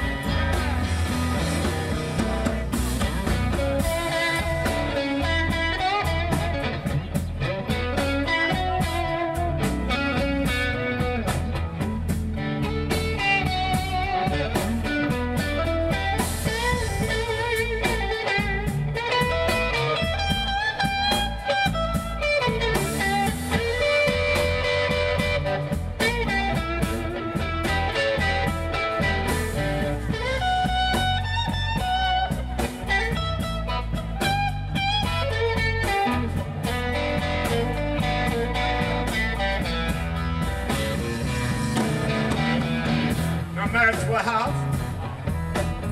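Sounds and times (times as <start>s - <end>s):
drums: 0.0s - 45.9s
electric bass: 0.0s - 45.9s
electric guitar lead lines: 0.0s - 45.9s.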